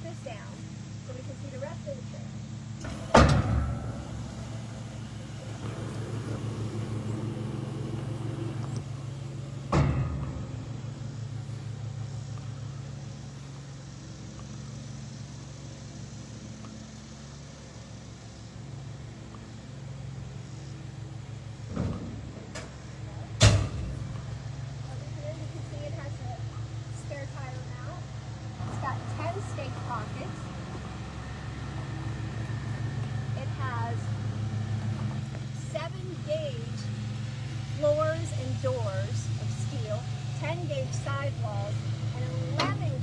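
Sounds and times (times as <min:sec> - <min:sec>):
loud metal clunks: 0:02.8 - 0:04.7, 0:09.4 - 0:11.0, 0:21.7 - 0:22.8, 0:23.4 - 0:24.3
electric hydraulic pump humming: 0:02.8 - 0:17.3.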